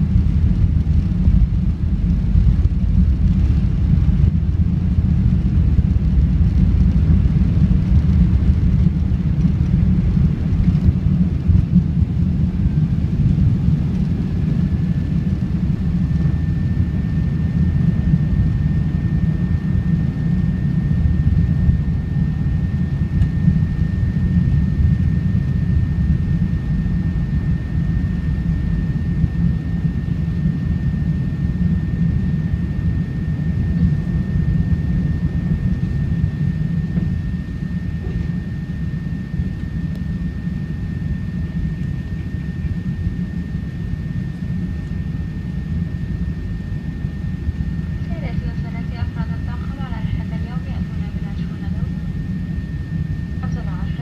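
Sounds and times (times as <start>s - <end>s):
jet engines rumbling in cabin: 0.0s - 54.0s
faint high whine: 11.6s - 54.0s.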